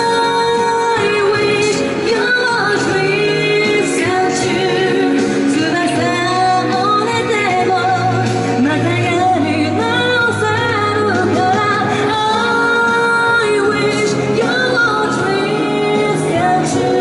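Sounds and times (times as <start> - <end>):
backing music: 0.0 - 17.0
woman singing into microphone: 0.0 - 17.0.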